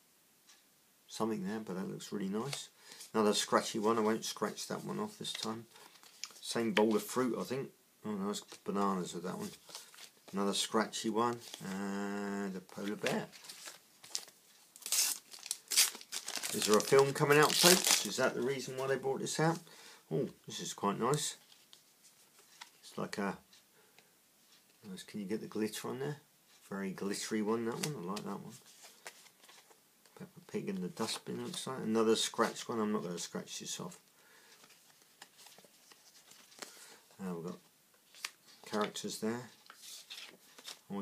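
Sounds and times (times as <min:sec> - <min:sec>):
sticker packet wrapper tearing: 0:14.1 - 0:18.1.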